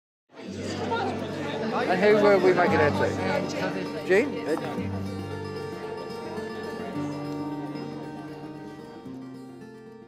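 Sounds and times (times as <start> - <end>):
crowd chatter: 0.3 - 10.0.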